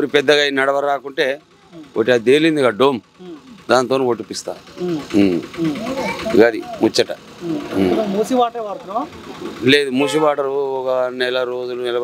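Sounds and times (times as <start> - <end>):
low engine rumble: 0.0 - 12.0
voices talking: 0.0 - 12.0.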